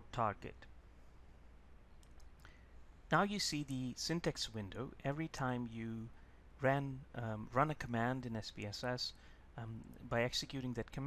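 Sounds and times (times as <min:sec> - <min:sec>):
faint clicks: 0:02.0 - 0:02.6.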